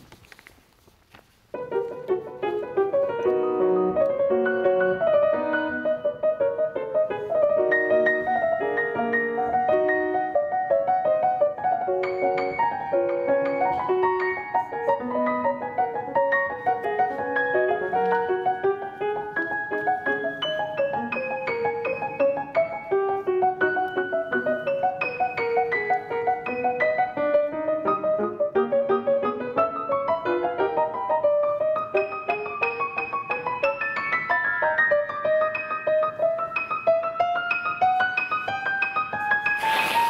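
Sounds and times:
fast piano passagework: 0:01.3 - 0:40.0.

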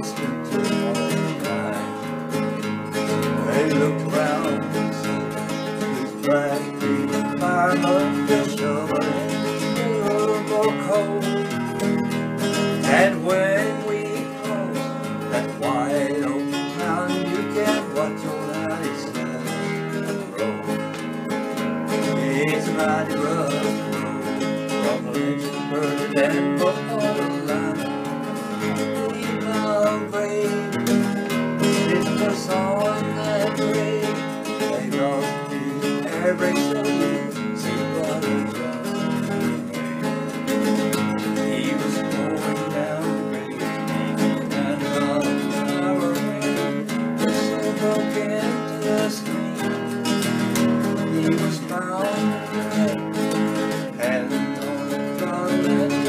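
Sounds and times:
acoustic guitar strumming: 0:00.0 - 0:56.0.

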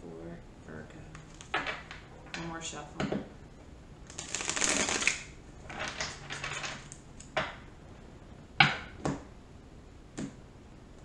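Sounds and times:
cards being shuffled: 0:04.1 - 0:07.0.

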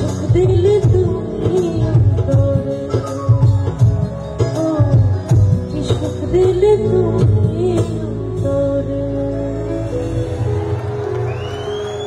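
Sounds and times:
thin high whistle rising: 0:11.3 - 0:12.0.

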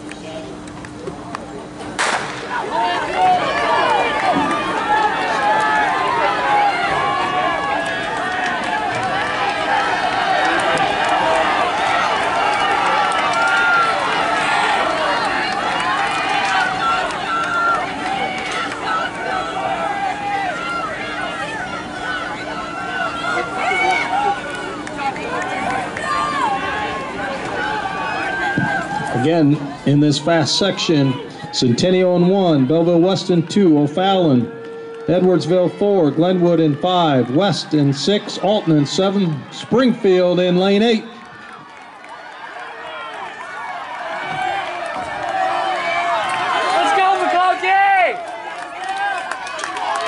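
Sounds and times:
spectators shouting and cheering: 0:00.0 - 0:50.0
starting pistol shot: 0:02.0 - 0:02.5.

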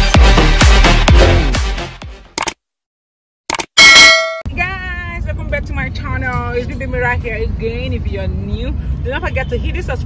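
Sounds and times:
bright bell-like ding: 0:03.8 - 0:04.5
woman talking: 0:04.5 - 0:10.0.

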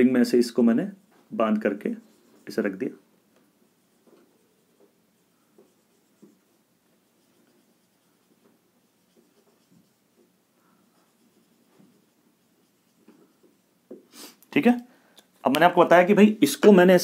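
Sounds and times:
marker scratching on whiteboard: 0:02.0 - 0:02.8, 0:03.6 - 0:14.0.

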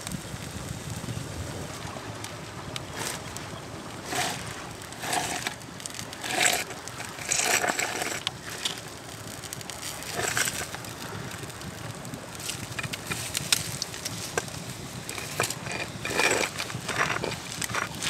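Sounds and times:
wood fire crackling: 0:00.0 - 0:18.0
fish scraping across bark and grass: 0:02.9 - 0:18.0.

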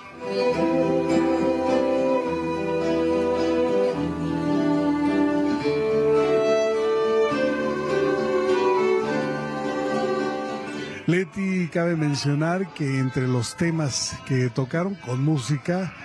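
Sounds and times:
violins playing melody: 0:00.0 - 0:11.0
guitar accompaniment: 0:00.0 - 0:12.6.

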